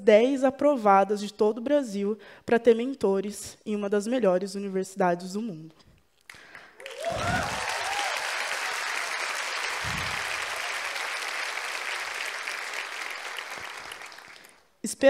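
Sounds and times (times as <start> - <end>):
audience applauding: 6.3 - 14.7
audience cheering: 6.8 - 14.6.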